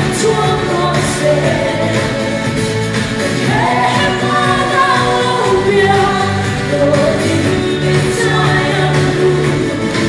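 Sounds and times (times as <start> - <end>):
amplified musical accompaniment: 0.0 - 10.0
woman singing into microphone: 0.0 - 10.0.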